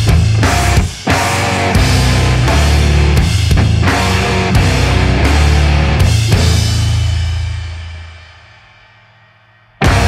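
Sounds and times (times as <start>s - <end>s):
noise rock band: 0.0s - 10.0s.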